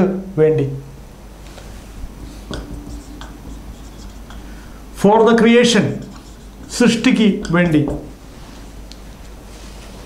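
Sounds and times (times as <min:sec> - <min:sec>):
marker pen writing on whiteboard: 0:02.2 - 0:08.3.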